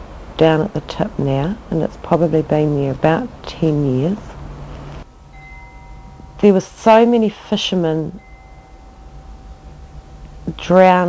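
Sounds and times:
soft steady hiss: 0.0 - 11.0
chime-like ringing tones: 5.1 - 11.0.

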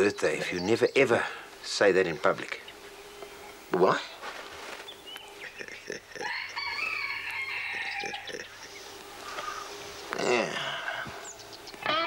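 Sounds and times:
rooster crowing: 6.2 - 8.6.

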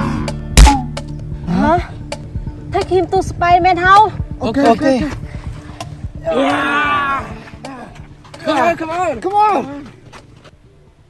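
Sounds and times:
background music: 0.0 - 11.0
loud thud: 0.6 - 0.9.

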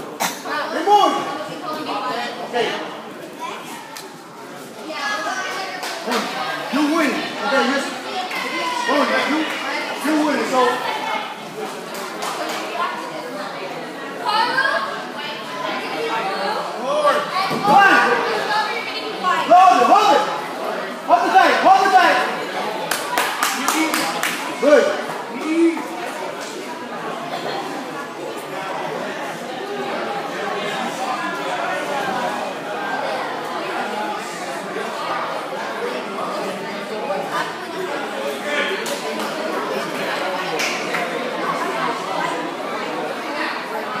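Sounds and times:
people chattering: 0.0 - 44.0
hands clapping: 22.8 - 24.5, 40.5 - 41.1.

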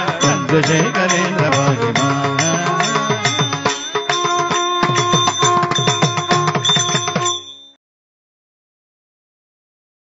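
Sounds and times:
rapid hand drum strokes: 0.0 - 7.4.

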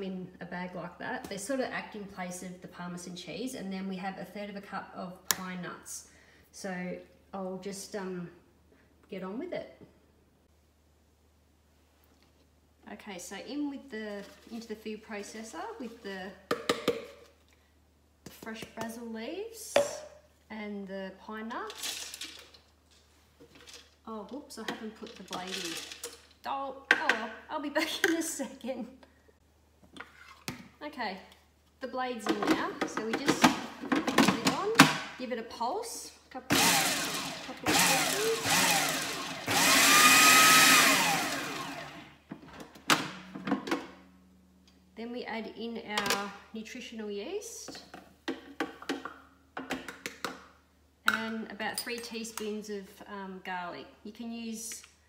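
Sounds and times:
nuts rattling into plastic bowl: 25.1 - 26.3.

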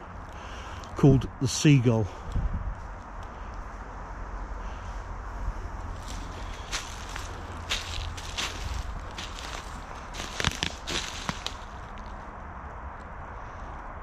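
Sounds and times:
steady low rumble: 0.0 - 14.0
footsteps crunching dry leaves: 5.8 - 12.2.

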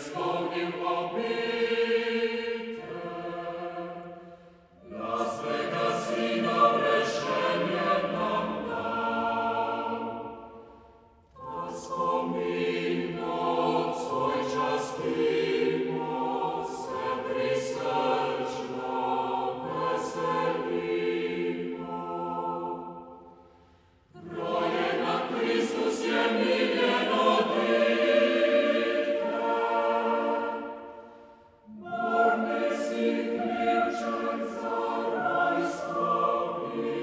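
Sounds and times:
chamber choir singing: 0.0 - 37.0.

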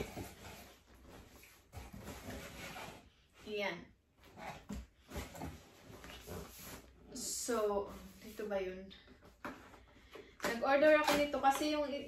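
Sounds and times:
cardboard scraping and rustling: 0.0 - 3.2.

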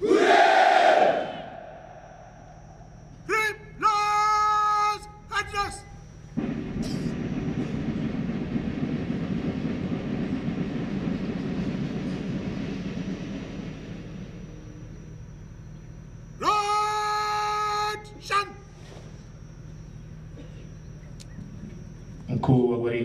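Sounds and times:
soldiers cheering hooray: 0.0 - 1.9, 16.4 - 18.6
man shouting a long call: 3.2 - 6.0, 16.4 - 18.7.

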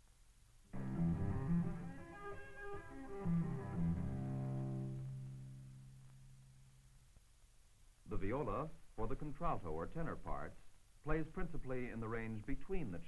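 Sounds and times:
bowed cello notes: 0.8 - 5.4.

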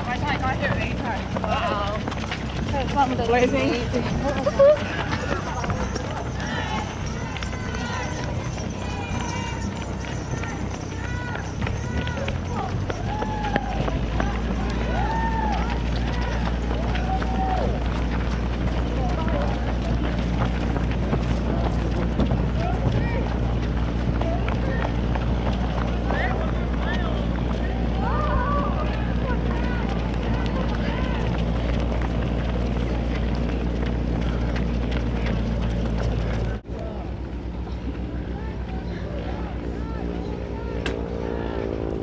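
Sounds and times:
running footsteps: 0.0 - 42.0
voices calling out and chattering: 0.0 - 42.0.

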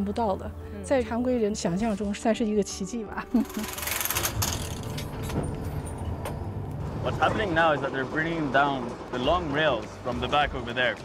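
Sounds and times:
machinery engine rumble: 3.4 - 11.0.

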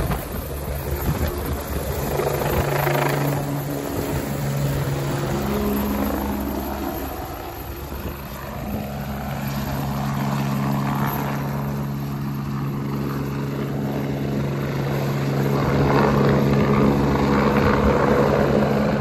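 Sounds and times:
helicopter flying low: 0.0 - 19.0.

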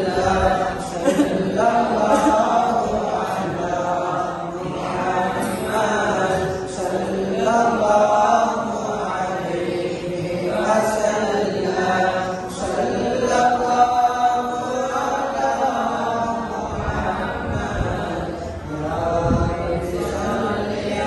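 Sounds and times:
man chanting into microphone: 0.0 - 21.0.

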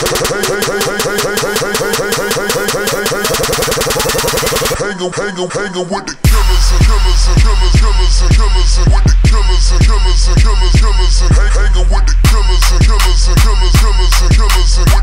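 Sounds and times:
heavy bass beat: 0.0 - 4.8, 6.2 - 15.0
hip hop beat: 0.0 - 15.0.

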